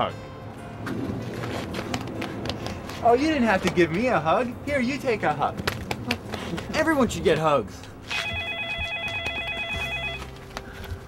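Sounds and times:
phone trill ringtone: 8.1s - 10.3s.

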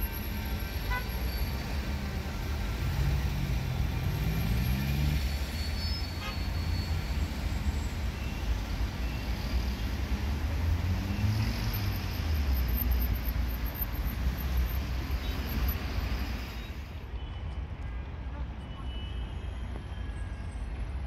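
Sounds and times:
traffic passing with low rumble: 0.0s - 21.0s.

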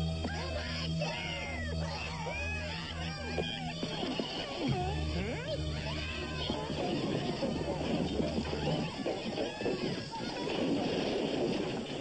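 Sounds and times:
steady low hum: 0.0s - 12.0s
cartoon whining sounds: 0.2s - 10.4s.

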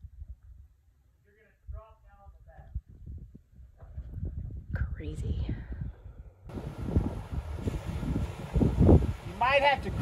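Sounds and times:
wind buffeting microphone: 1.7s - 10.0s.

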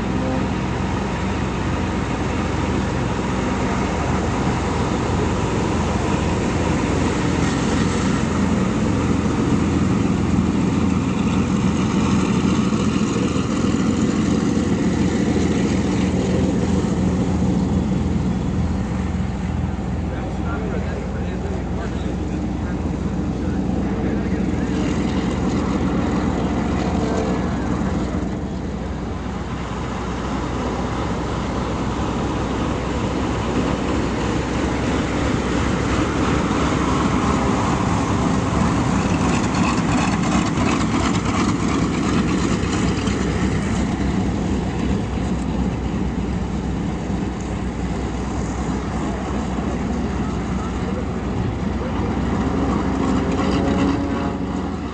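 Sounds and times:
propeller plane engines taxiing: 0.0s - 54.9s.

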